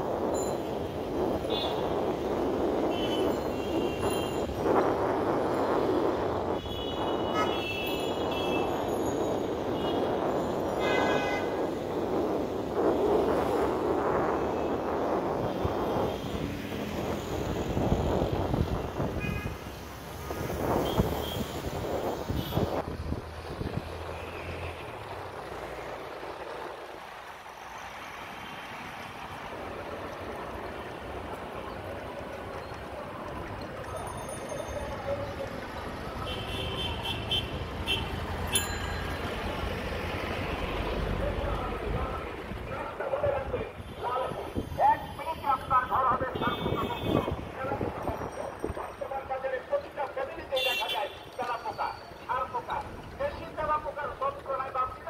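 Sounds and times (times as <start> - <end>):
auto-rickshaw car and truck engines: 0.0 - 55.0.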